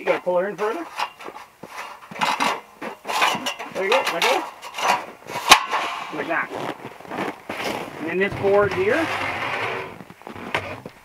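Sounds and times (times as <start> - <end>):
steel scaffold parts clinking: 0.0 - 6.2, 8.2 - 9.6.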